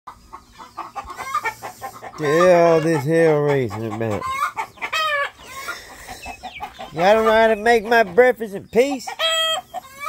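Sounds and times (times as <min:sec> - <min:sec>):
young chickens clucking and cheeping: 0:00.1 - 0:10.0.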